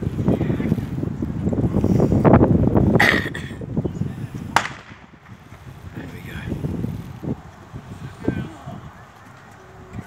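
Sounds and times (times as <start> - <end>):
wind buffeting microphone: 0.0 - 10.0
sharp crack: 4.5 - 5.9.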